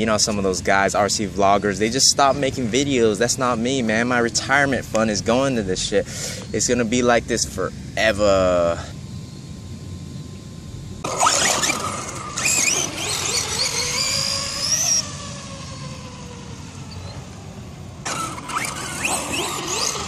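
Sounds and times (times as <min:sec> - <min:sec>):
tyres on asphalt: 0:00.0 - 0:07.5, 0:10.2 - 0:20.0
electric motor whining: 0:10.9 - 0:20.0.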